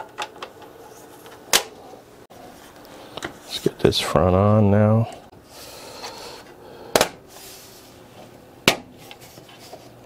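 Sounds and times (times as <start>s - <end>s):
computer fans humming: 0.0s - 9.2s.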